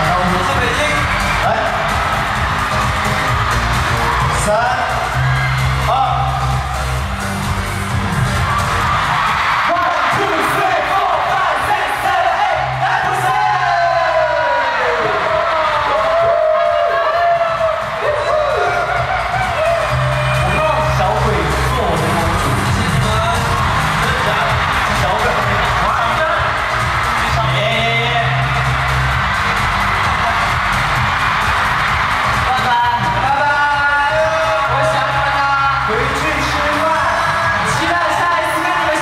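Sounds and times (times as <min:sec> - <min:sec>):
crowd cheering and shouting: 0:00.0 - 0:39.0
pop music over sound system: 0:00.0 - 0:39.0.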